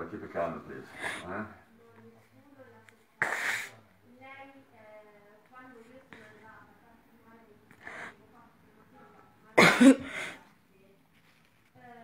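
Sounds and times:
faint background talk: 0.0 - 12.0
person coughing: 9.6 - 10.4.

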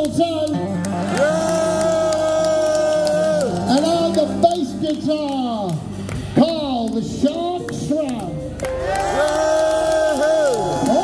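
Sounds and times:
live rock band playing: 0.0 - 9.9.

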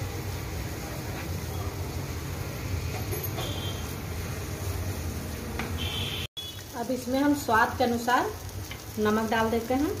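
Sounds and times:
food frying in a pan: 0.0 - 10.0.

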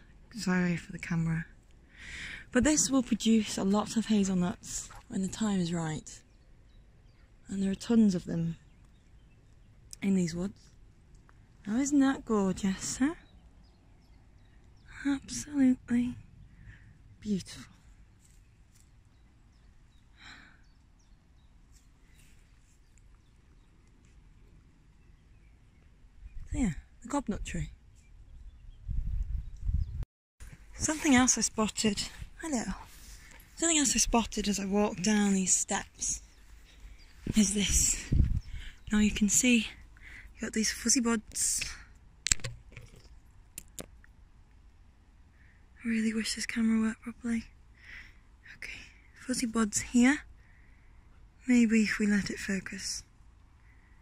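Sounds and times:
steady low rumble: 24.6 - 40.9.

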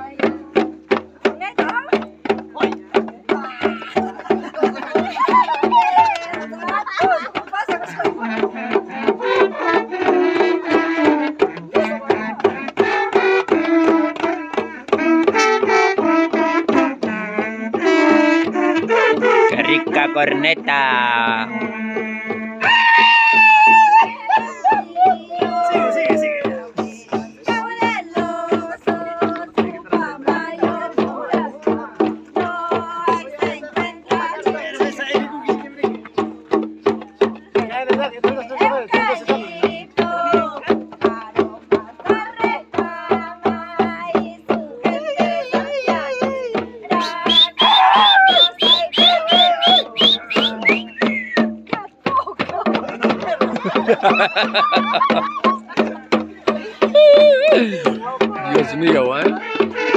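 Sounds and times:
small hand drums beating: 0.0 - 59.9
women singing in high voices: 1.2 - 19.7, 21.5 - 35.7, 37.5 - 59.9.

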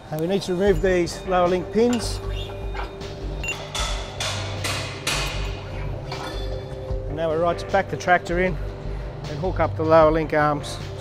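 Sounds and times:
background music with low bass: 0.0 - 11.0
sharp metallic knocks: 1.8 - 5.7.

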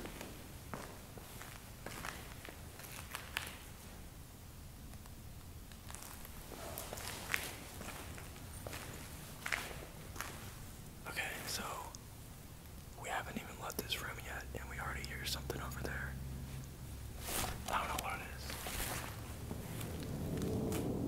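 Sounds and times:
footsteps on rubble: 5.8 - 10.5
hushed whispering voices: 11.0 - 12.0, 12.9 - 16.2, 17.3 - 18.8.

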